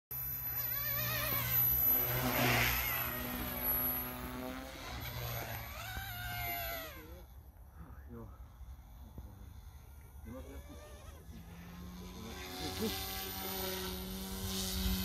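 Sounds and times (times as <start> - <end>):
model helicopter rotor buzz: 0.2 - 15.0.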